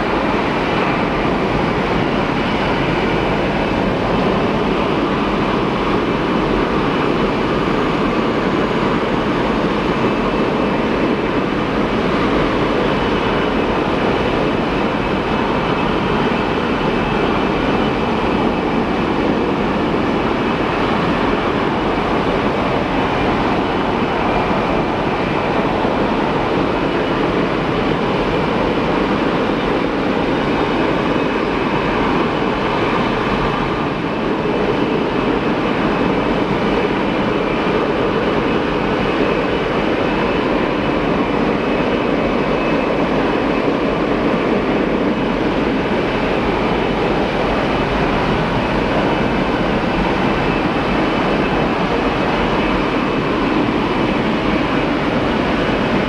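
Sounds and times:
high engine whine: 0:00.0 - 0:56.0
jet engines rumbling: 0:00.0 - 0:56.0.

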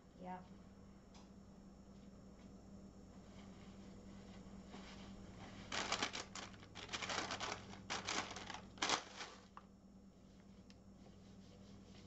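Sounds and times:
paper towels crinkling: 0:03.4 - 0:09.7.

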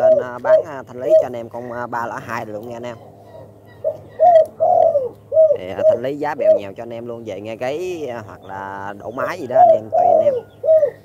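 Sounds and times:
dove cooing: 0:00.0 - 0:11.0.

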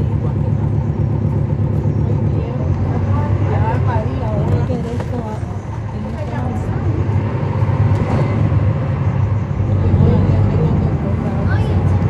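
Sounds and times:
bus diesel engine drone: 0:00.0 - 0:12.0.

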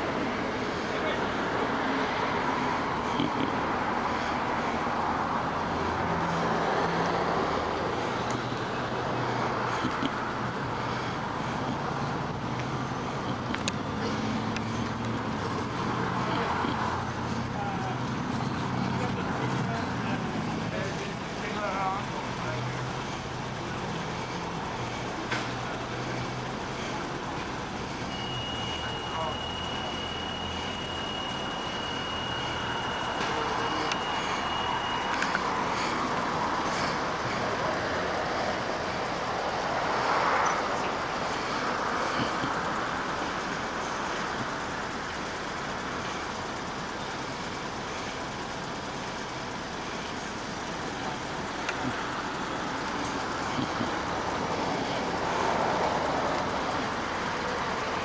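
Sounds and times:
low engine hum: 0:00.0 - 0:58.0
passing vehicles: 0:00.0 - 0:58.0.

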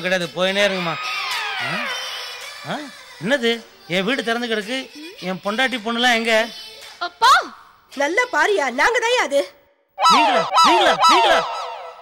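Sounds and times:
comic pitched calls: 0:10.0 - 0:12.0
echoing tail: 0:10.0 - 0:12.0.

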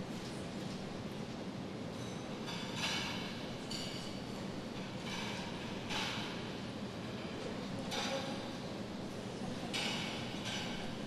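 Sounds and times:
large hall background noise: 0:00.0 - 0:11.0.

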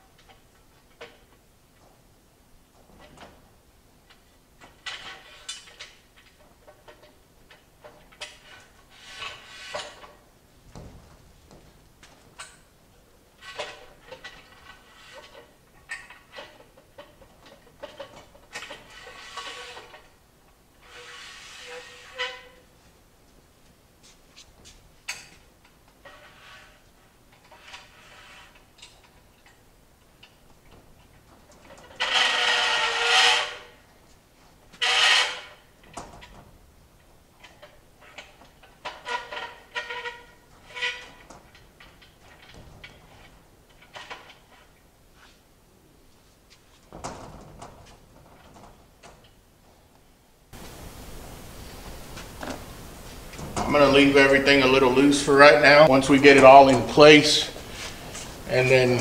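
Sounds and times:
metal scraping: 0:08.2 - 0:10.2, 0:13.4 - 0:20.1, 0:20.8 - 0:22.6, 0:26.0 - 0:28.9, 0:31.5 - 0:33.8, 0:34.8 - 0:35.7, 0:51.6 - 0:59.0.

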